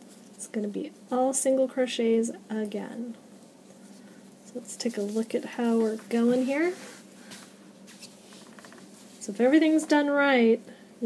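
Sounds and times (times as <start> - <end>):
yarn rustling and scratching: 3.3 - 10.0.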